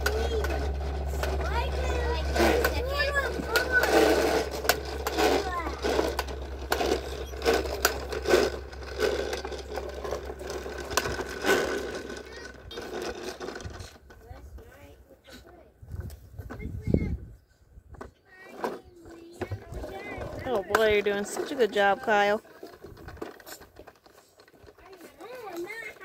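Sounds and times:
toy push mower clicking and rattling: 0.0s - 15.6s, 18.0s - 26.0s.

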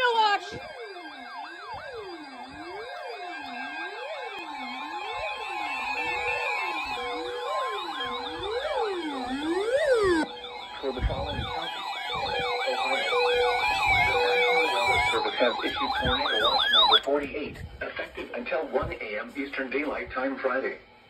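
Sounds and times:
steady alarm tone: 0.0s - 20.1s
weather alert radio alarms wailing: 0.0s - 20.2s.

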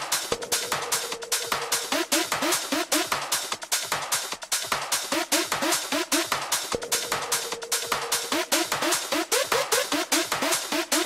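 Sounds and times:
techno music: 0.0s - 11.0s.

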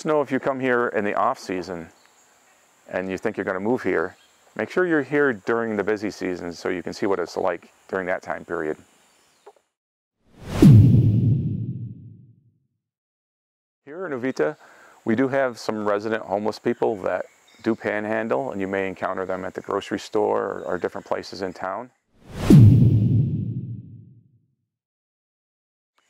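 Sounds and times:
whoosh: 10.4s - 12.4s, 22.2s - 24.2s
low boom with falling pitch: 10.4s - 12.5s, 22.4s - 24.3s.

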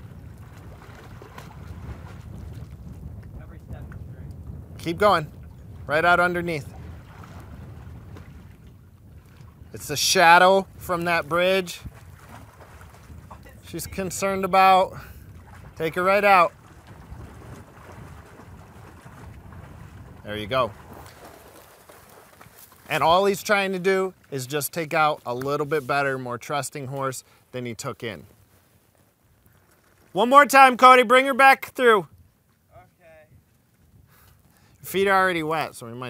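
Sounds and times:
wind rumbling on microphone: 0.0s - 23.6s, 32.1s - 35.9s
horse wading in water: 0.0s - 24.4s.

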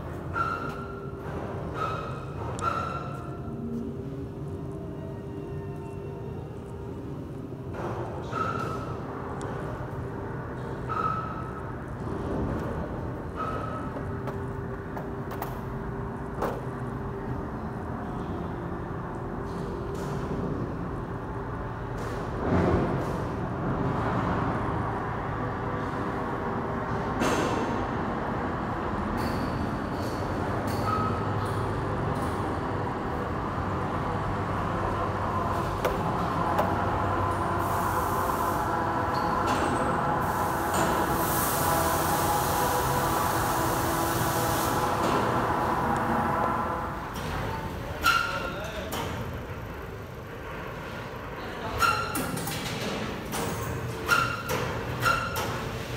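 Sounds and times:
vehicle rumble and hum: 0.0s - 55.9s
short squeaks: 51.7s - 52.4s.

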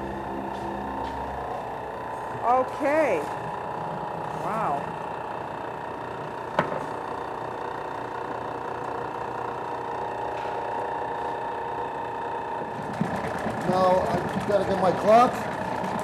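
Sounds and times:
stand mixer motor humming: 0.0s - 16.0s.

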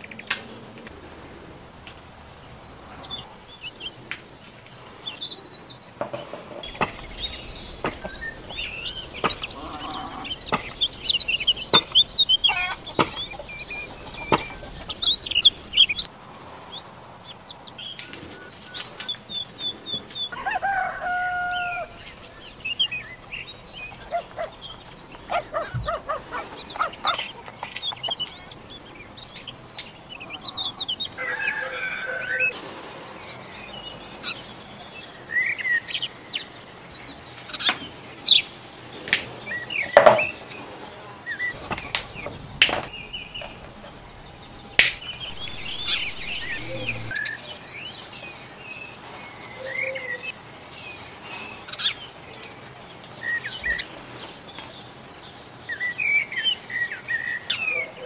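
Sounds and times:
small birds chirping: 0.0s - 58.0s
chicken calling: 6.6s - 16.1s, 20.3s - 27.7s, 31.2s - 32.6s, 41.5s - 47.3s.

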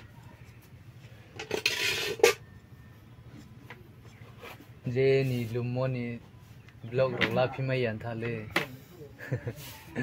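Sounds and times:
cutlery scraping a plate: 1.4s - 2.5s.

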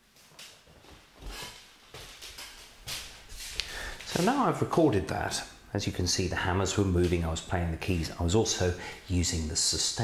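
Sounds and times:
knocks and shuffles: 0.0s - 4.3s
footsteps on wooden floor: 0.1s - 3.6s.

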